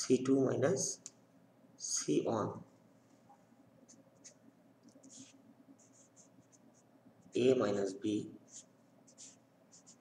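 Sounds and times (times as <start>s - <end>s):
marker scratching on paper: 5.0s - 6.9s, 8.4s - 10.0s.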